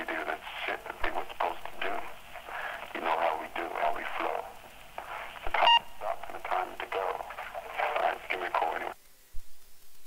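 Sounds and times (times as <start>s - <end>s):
voice over telephone line: 0.0s - 9.0s.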